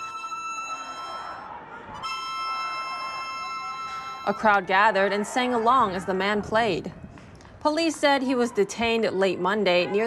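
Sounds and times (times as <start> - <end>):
harmonica playing held chords: 0.0 - 4.6.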